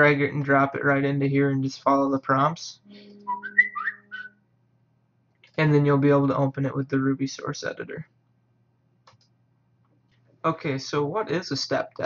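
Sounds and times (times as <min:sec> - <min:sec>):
low steady hum: 0:00.0 - 0:12.0
man whistling: 0:02.9 - 0:04.4.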